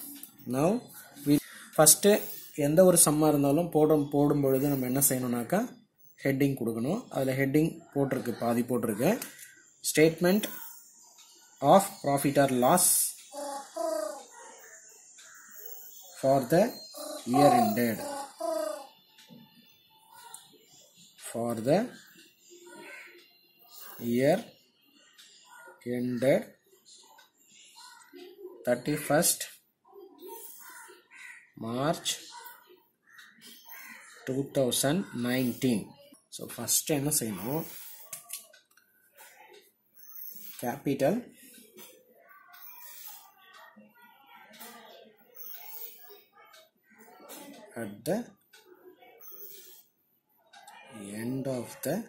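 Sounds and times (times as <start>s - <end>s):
man holding a syllable: 17.0s - 18.9s
marker squeaking on whiteboard: 41.8s - 43.4s.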